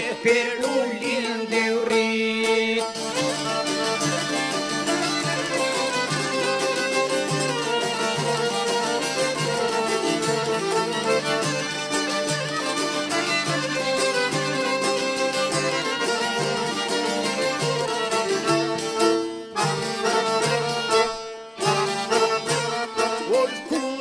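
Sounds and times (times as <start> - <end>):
accordion: 0.0 - 24.0
plucked lutes: 0.0 - 24.0
violin: 0.0 - 24.0.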